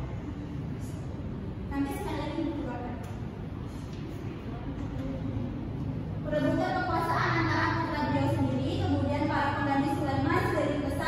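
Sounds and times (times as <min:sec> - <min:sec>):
low rumble background noise: 0:00.0 - 0:11.0
woman speaking: 0:01.7 - 0:03.2, 0:06.2 - 0:11.0.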